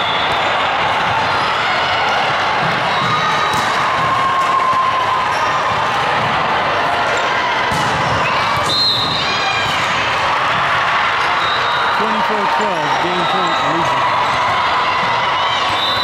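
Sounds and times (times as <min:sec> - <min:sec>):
crowd chatter and cheering: 0:00.0 - 0:16.0
volleyball hits: 0:02.2 - 0:07.0, 0:07.6 - 0:11.0.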